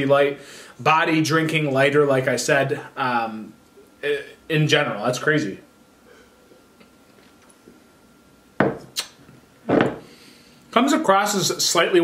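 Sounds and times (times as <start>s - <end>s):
glass knocking on wooden table: 8.6s - 8.9s, 9.7s - 10.0s.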